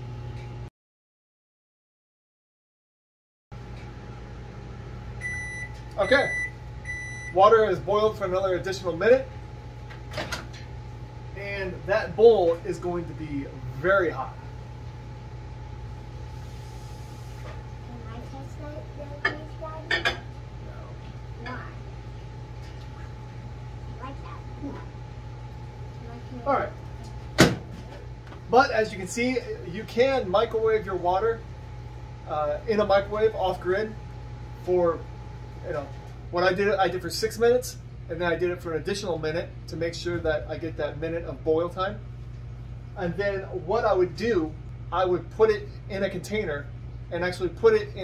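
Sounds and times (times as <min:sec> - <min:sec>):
low electrical hum: 0:00.0 - 0:00.7, 0:03.6 - 0:48.0
microwave oven beeping: 0:03.6 - 0:08.4.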